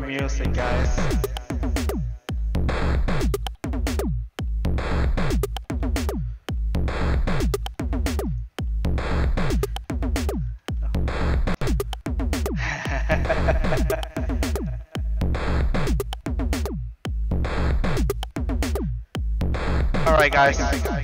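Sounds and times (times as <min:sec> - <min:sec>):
drum-machine beats: 0:00.0 - 0:21.0.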